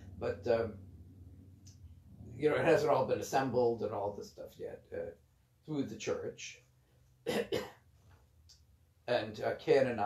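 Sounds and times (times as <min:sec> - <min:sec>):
man coughing: 0:07.3 - 0:07.8.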